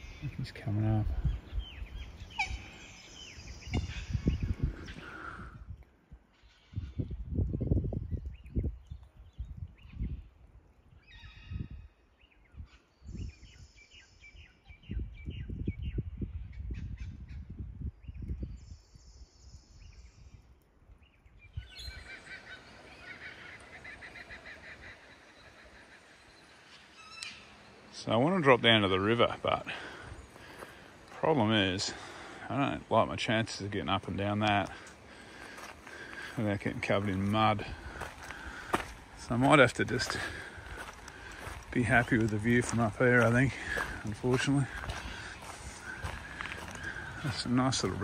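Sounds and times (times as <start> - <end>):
wind rumbling on microphone: 0.0 - 22.9, 28.8 - 48.0
birds calling: 0.0 - 48.0.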